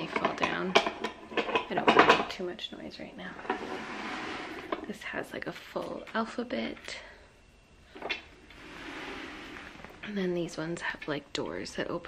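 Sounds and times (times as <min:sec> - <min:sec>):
soft rustling: 0:08.2 - 0:10.5.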